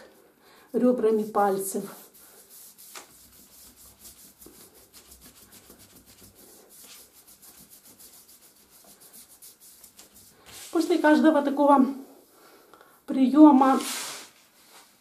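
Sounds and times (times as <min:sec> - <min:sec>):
hands rubbing skin: 0:00.8 - 0:11.2.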